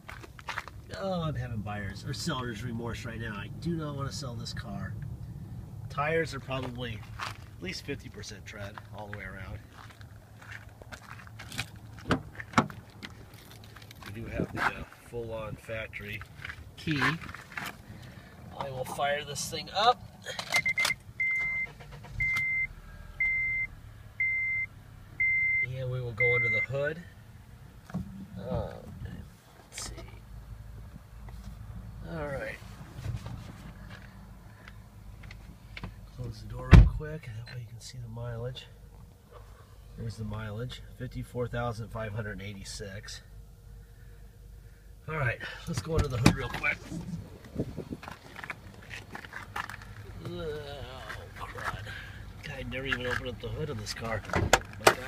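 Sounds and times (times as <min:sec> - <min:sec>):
low steady hum: 0:00.0 - 0:55.0
car engine starting: 0:00.8 - 0:37.3
car door warning chime beeping: 0:20.6 - 0:26.8.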